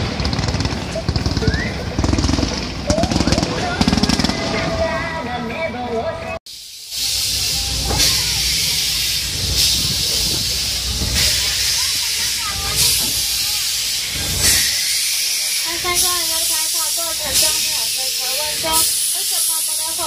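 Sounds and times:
low rumble of running train: 0:00.0 - 0:20.0
steam locomotive hissing: 0:06.4 - 0:20.0.

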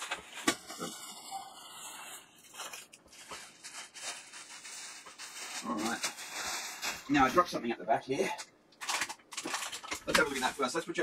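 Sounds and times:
plastic packaging crinkling: 0:00.0 - 0:07.5, 0:08.3 - 0:11.0.

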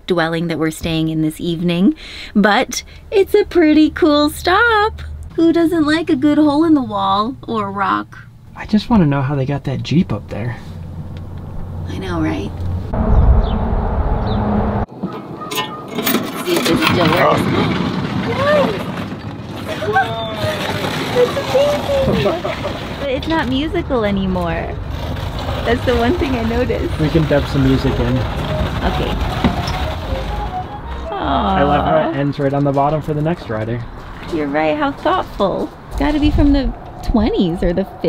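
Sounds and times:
low outdoor rumble: 0:00.1 - 0:14.9, 0:16.7 - 0:38.0.

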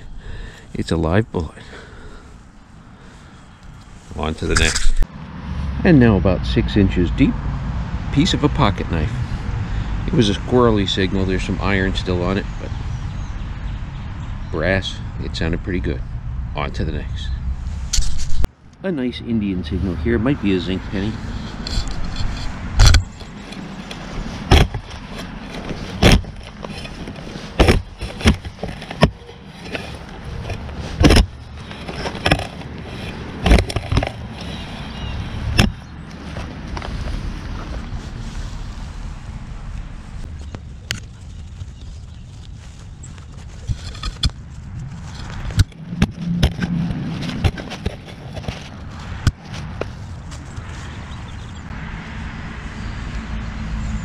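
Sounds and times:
dirt scraping and rustling: 0:03.0 - 0:06.0, 0:16.6 - 0:52.8
shovel striking soil: 0:04.4 - 0:05.0, 0:21.4 - 0:34.6.

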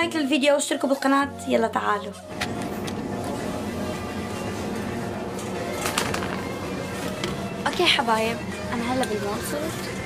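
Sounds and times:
store ambience: 0:00.0 - 0:10.0.

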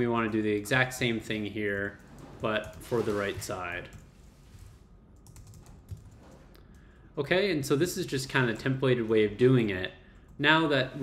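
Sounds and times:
computer keyboard typing: 0:05.2 - 0:06.4.

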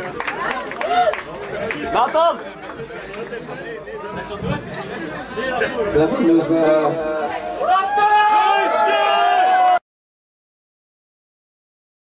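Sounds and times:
crowd talking and calling out: 0:00.0 - 0:09.8
loud shout: 0:07.2 - 0:09.8.

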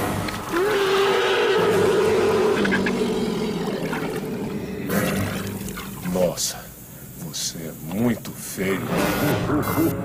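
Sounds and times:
creature roar: 0:00.5 - 0:05.3.

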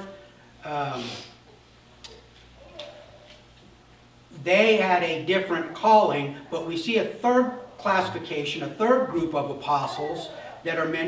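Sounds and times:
man's voice: 0:04.4 - 0:11.0.

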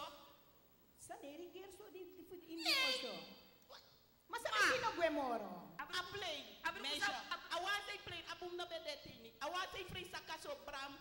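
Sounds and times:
loud high cry: 0:02.6 - 0:03.4.

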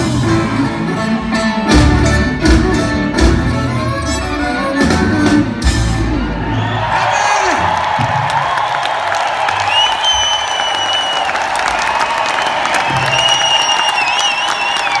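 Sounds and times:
audience applauding and cheering: 0:05.6 - 0:15.0
long high whistles: 0:12.8 - 0:15.0.

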